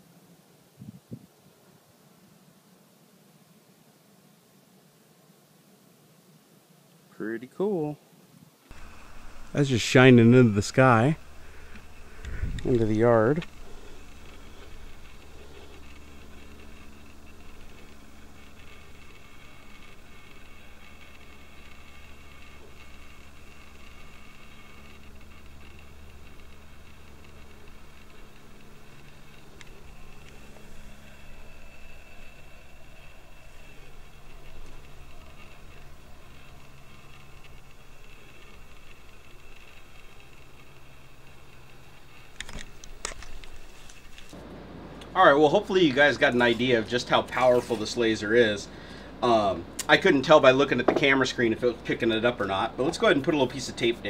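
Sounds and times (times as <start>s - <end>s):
low hum: 8.7s - 54.0s.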